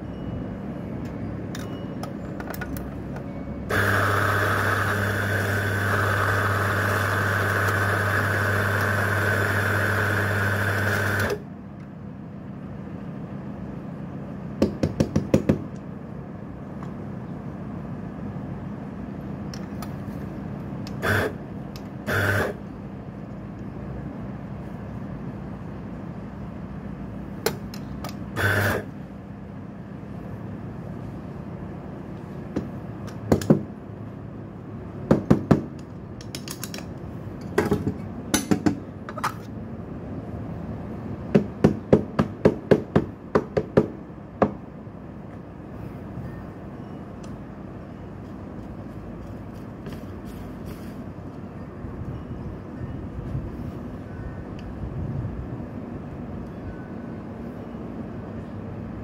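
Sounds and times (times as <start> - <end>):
coffee grinder motor: 3.7 - 11.4, 22.1 - 22.6, 28.4 - 28.9.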